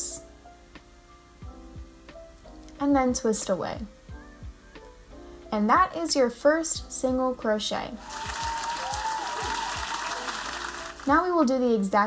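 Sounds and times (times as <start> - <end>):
music with steady beat: 0.0 - 3.2, 3.8 - 5.9, 8.0 - 11.3
applause: 8.0 - 11.1.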